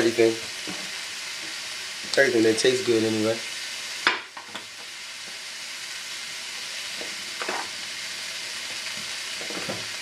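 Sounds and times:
chicken sizzling in a pan: 0.0s - 10.0s.

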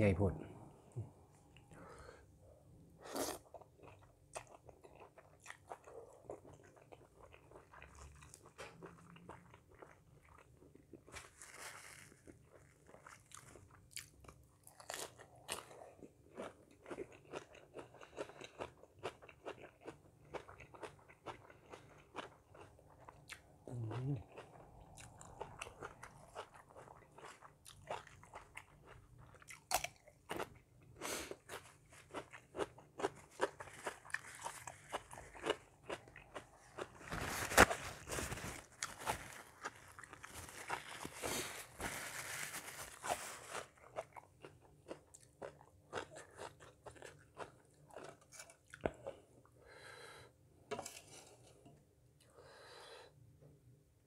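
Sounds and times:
person chewing and crunching food: 1.0s - 51.6s.

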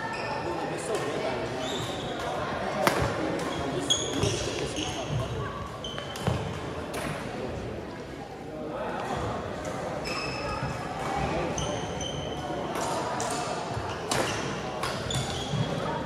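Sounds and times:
shoes squeaking on hardwood court: 0.0s - 0.6s, 1.6s - 2.4s, 3.4s - 6.6s, 10.0s - 12.4s, 13.8s - 16.0s.

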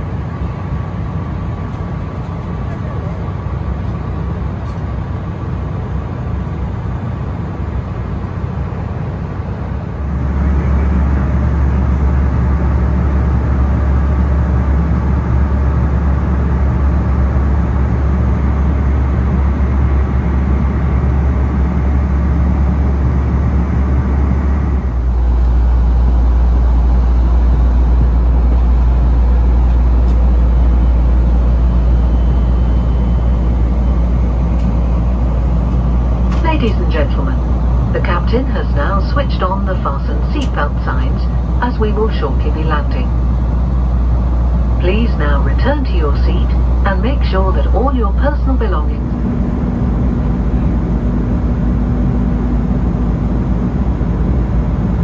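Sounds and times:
jet cabin engine drone: 0.0s - 55.0s.

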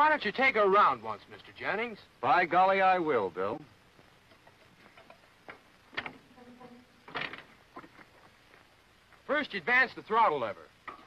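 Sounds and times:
faint knocks and clicks: 4.0s - 6.3s.

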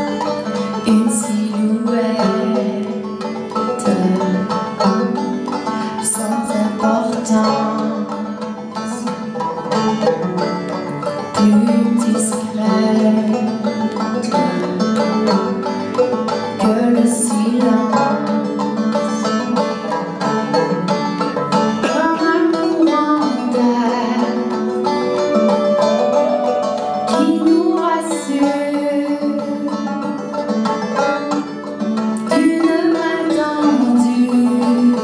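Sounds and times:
live band playing: 0.0s - 35.0s
sliding melodic phrase: 22.6s - 30.0s.

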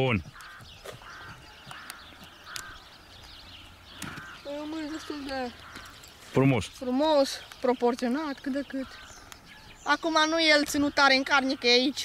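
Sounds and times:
bird calling: 0.0s - 12.0s.

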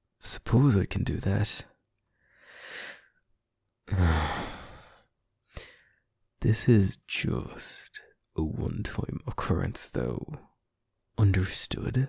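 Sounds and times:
man sighing: 3.8s - 5.8s.

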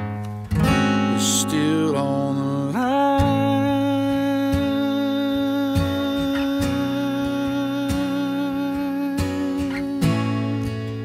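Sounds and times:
acoustic guitar strums: 0.0s - 11.0s
person singing: 1.0s - 11.0s.

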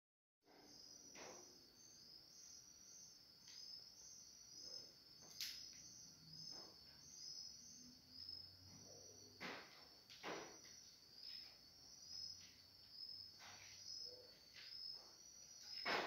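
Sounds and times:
insect chirping: 0.5s - 16.0s.

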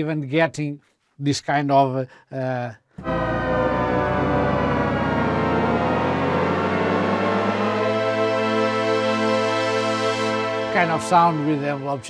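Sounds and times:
synthesizer held chord: 3.0s - 12.0s.

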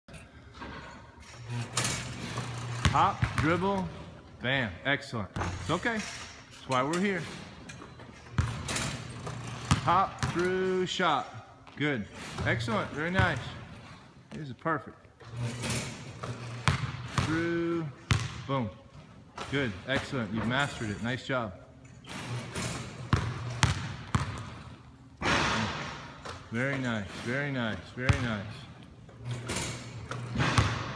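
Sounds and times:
basketball bouncing on gym floor: 2.8s - 3.9s, 8.4s - 10.5s, 16.2s - 17.4s, 18.1s - 18.5s, 23.1s - 26.4s, 28.0s - 28.5s, 30.1s - 30.9s
machine firing ball: 29.6s - 30.9s.

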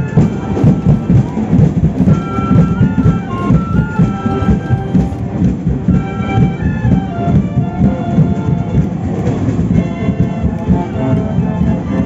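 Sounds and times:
held brass notes: 0.0s - 12.0s
marching drums beating: 0.0s - 12.0s.

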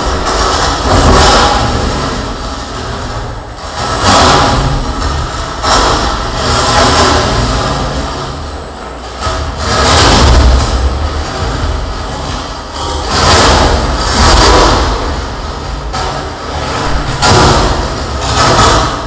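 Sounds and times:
distorted harsh noise: 0.0s - 19.0s.

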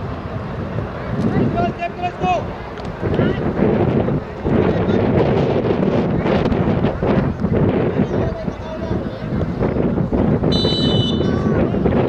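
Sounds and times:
wind buffeting microphone: 0.0s - 12.0s
crowd chattering and calling: 0.9s - 12.0s.

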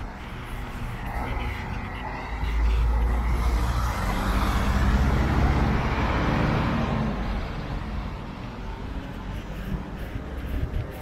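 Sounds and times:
bus driving past: 1.0s - 10.7s.

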